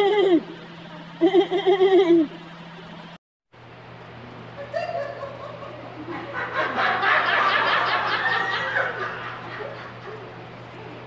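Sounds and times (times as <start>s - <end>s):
electrical hum: 0.0s - 11.0s
high-pitched laughter: 1.2s - 2.4s, 4.6s - 10.3s.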